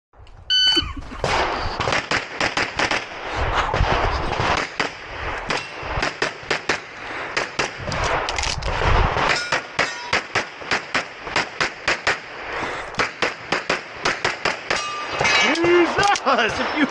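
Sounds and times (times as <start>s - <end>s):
shot timer beep: 0.5s - 0.9s
rapid pistol shots: 1.2s - 15.3s.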